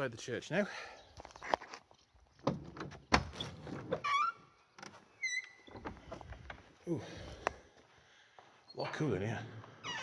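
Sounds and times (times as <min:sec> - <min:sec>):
door hinges creaking and squeaking: 0:02.4 - 0:06.7, 0:09.7 - 0:10.0.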